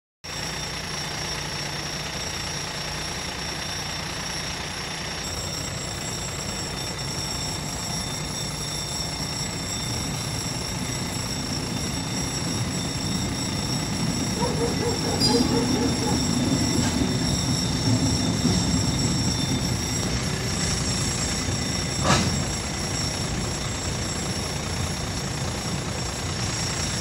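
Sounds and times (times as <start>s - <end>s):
diesel locomotive rumble: 0.2s - 27.0s
level crossing bell ringing: 4.0s - 25.5s.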